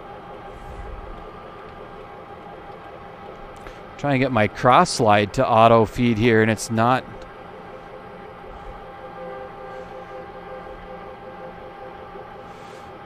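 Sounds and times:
metal lathe humming: 0.0 - 13.0
person talking: 4.0 - 7.2.

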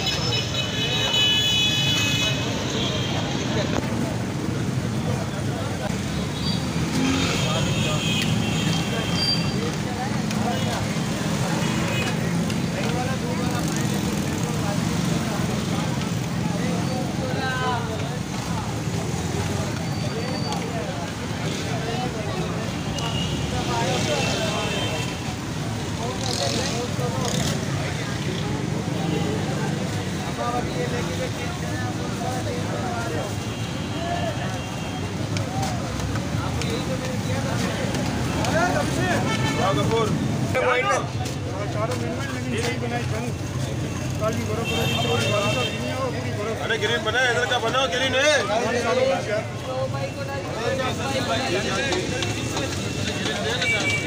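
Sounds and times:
people talking: 0.0 - 54.0
traffic noise: 0.0 - 54.0.

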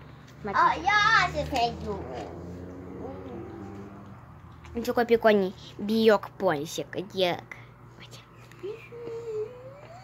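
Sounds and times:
child speaking syllable: 0.4 - 2.4
child humming voice: 1.8 - 4.0, 8.6 - 10.0.

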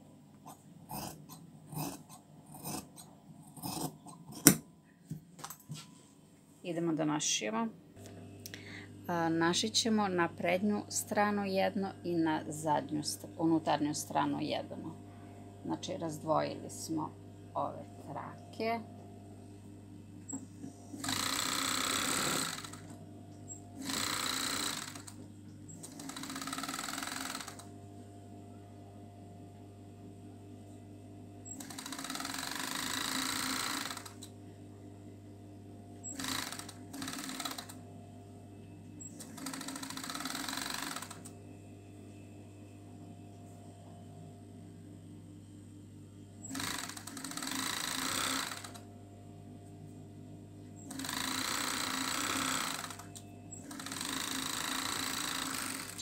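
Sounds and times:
sewing machine stitching: 0.9 - 4.6, 21.0 - 23.0, 23.8 - 27.7, 31.5 - 34.3, 36.0 - 37.8, 39.0 - 41.3, 46.4 - 48.8, 50.8 - 56.0
motor humming: 19.9 - 27.7, 31.4 - 34.4, 36.0 - 37.8.

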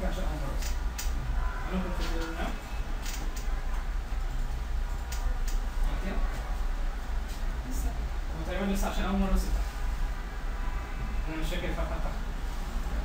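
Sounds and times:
low voices talking: 0.0 - 4.3
low electrical hum: 0.0 - 13.0
sharp clicks: 0.6 - 1.2, 4.4 - 5.7.

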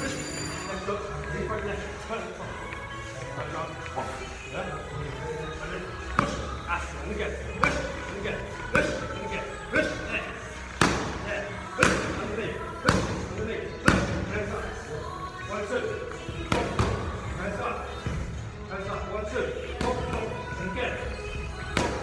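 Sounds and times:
boxing gloves hitting mitts: 10.7 - 12.2.

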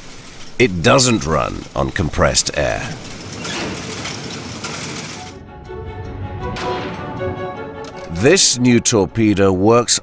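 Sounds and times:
machinery rattling: 2.9 - 5.4.

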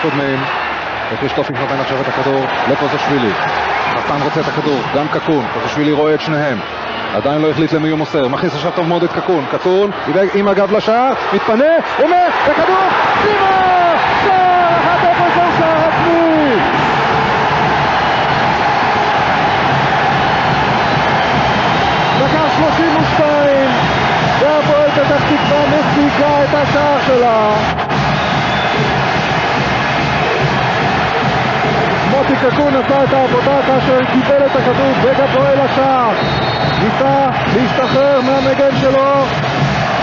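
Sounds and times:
stadium crowd cheering: 0.0 - 40.0
man commentating: 7.2 - 16.9, 22.1 - 27.7, 32.0 - 39.3.

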